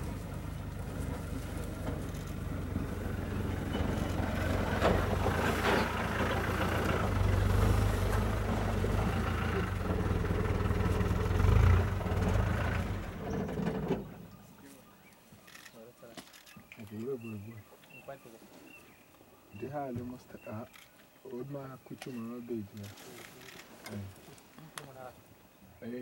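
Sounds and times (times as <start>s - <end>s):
vehicle engine idling: 0.0s - 14.6s.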